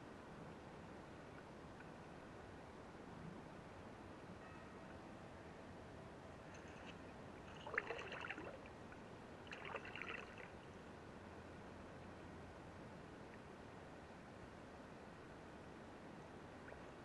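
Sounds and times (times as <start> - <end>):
faint steady hiss: 0.0 - 17.0.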